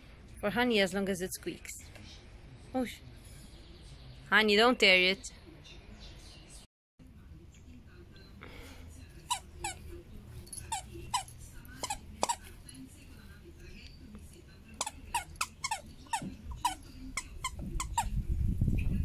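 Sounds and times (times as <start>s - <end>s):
dog toy squeaking: 9.3s - 9.8s, 10.6s - 12.4s, 14.8s - 18.2s.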